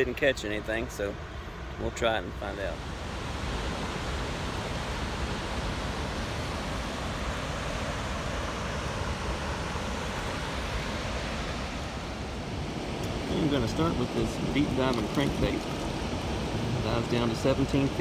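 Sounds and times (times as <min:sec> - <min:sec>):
water rushing through dam gate: 0:02.4 - 0:18.0.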